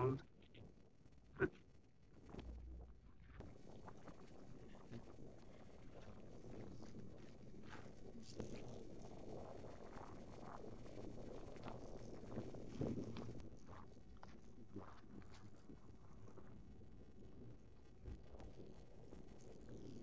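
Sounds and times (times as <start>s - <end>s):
wind rumble on microphone: 0.0s - 20.0s.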